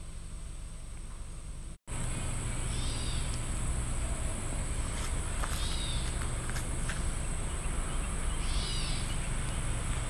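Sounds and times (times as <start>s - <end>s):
songbird call: 2.5s - 6.3s, 6.9s - 10.0s.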